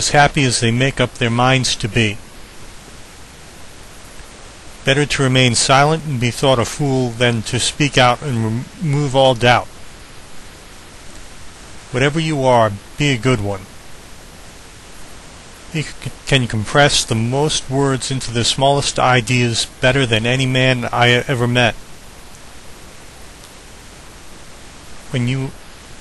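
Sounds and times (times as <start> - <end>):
man's voice: 0.0 - 2.2, 4.9 - 9.7, 11.9 - 13.7, 15.7 - 21.8, 25.1 - 25.6
person speaking: 0.0 - 2.2, 4.8 - 9.7, 11.9 - 13.7, 15.7 - 21.8, 25.1 - 25.6
steady background hiss: 0.0 - 26.0.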